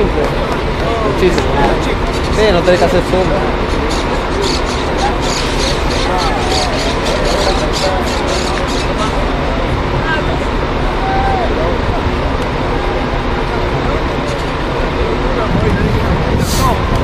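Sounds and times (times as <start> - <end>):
distant voices calling: 0.0 - 15.3.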